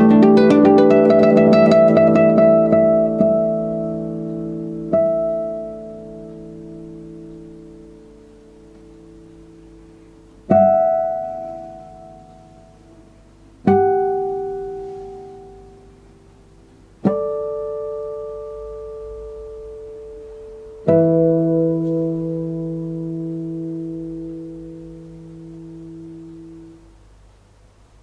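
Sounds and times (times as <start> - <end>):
classical guitar chords: 0.0 - 27.5.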